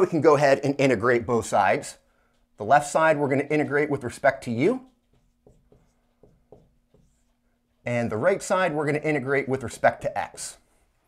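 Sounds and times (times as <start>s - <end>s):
low room hum: 0.0s - 11.0s
marker writing on whiteboard: 2.2s - 10.8s.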